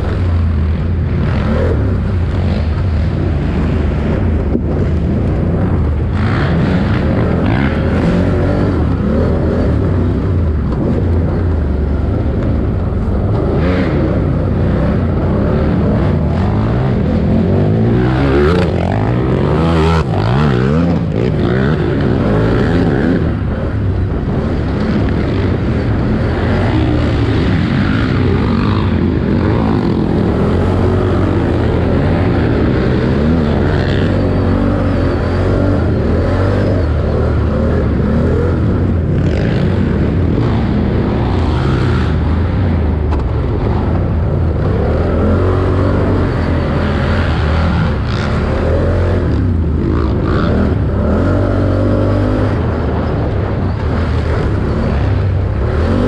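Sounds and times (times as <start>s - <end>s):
quad bike engine revving: 0.0s - 56.0s.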